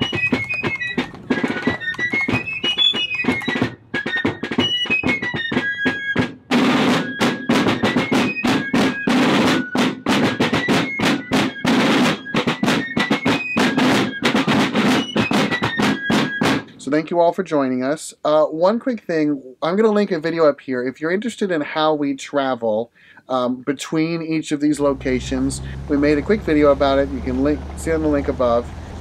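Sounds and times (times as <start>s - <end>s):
snare drum strokes: 0.0s - 16.9s.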